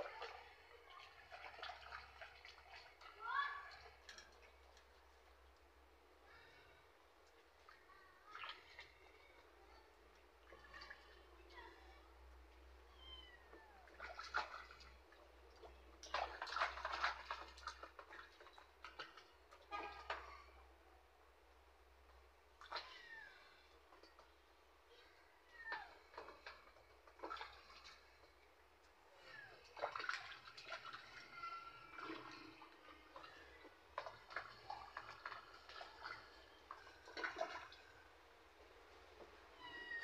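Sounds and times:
water splashing in plastic tub: 0.0 - 11.7, 12.4 - 20.7, 21.8 - 24.7, 25.4 - 40.0.

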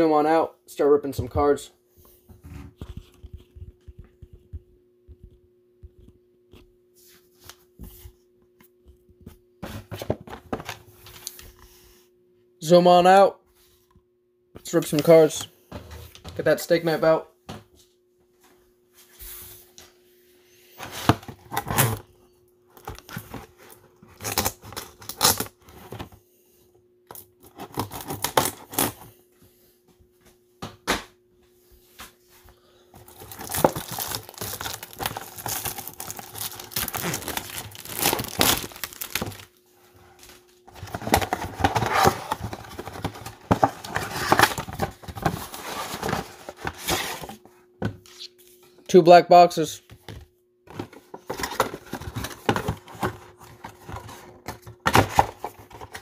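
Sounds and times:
plastic shrink-wrap tearing: 33.1 - 39.5.

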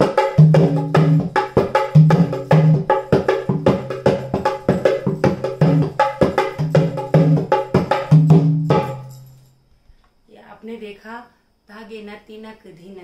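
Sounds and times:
hand drum fast rhythm: 0.0 - 9.0.

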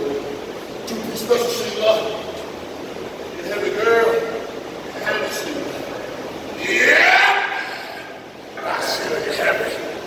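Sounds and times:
man's strained cry of effort: 6.6 - 8.2.

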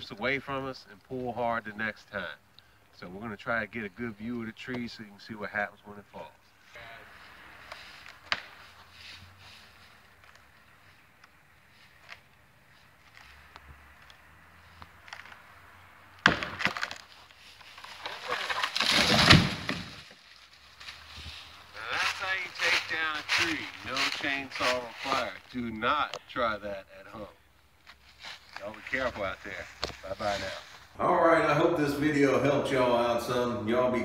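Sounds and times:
wood cracking: 7.6 - 8.7, 13.0 - 25.5
tree trunk hitting the ground: 8.1 - 8.6, 16.1 - 20.3
wood snapping and splintering: 16.1 - 21.0.

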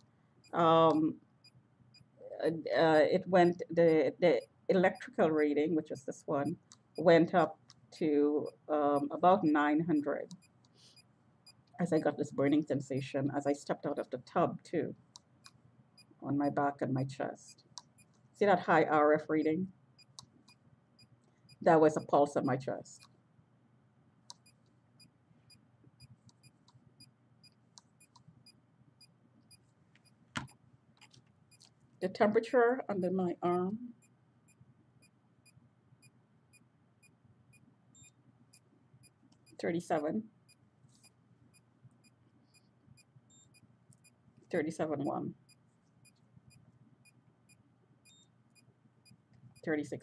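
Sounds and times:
meter electronic ticks: 0.0 - 2.1, 3.4 - 7.4, 8.4 - 12.7, 20.0 - 22.2, 24.3 - 24.6, 26.0 - 29.6, 33.0 - 39.6
meter ticking: 24.3 - 24.6.

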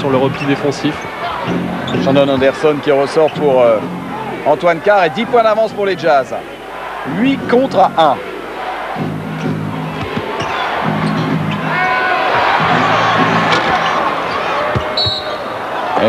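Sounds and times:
arena crowd noise: 0.0 - 16.0
basketball bouncing on court: 10.0 - 11.2, 14.6 - 15.4.

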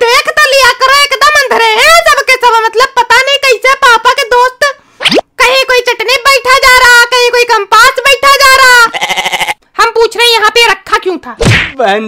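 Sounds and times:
high-pitched cartoon voice talking: 0.0 - 9.0.

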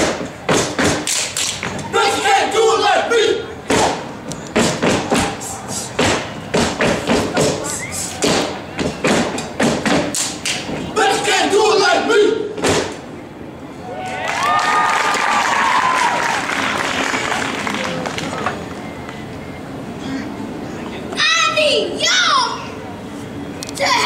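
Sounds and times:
rhythmic stomps: 0.0 - 1.9, 3.6 - 10.9
hand claps and body slaps: 0.5 - 1.8, 6.0 - 7.6, 8.2 - 10.7
shouted chant: 1.8 - 4.0, 10.9 - 12.5
crowd cheering and screaming: 13.8 - 18.0.

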